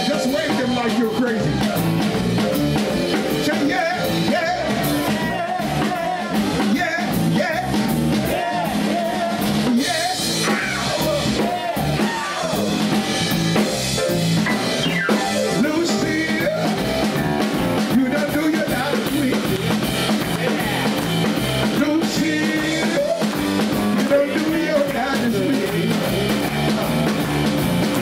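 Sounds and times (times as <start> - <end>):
man singing: 0.0 - 1.7, 3.3 - 13.5, 15.2 - 17.2, 17.8 - 21.0, 21.6 - 26.9
rock and roll band playing: 0.0 - 28.0.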